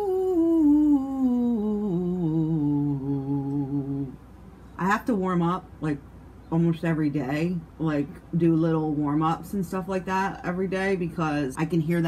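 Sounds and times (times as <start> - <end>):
woman singing sliding ooh: 0.0 - 4.2.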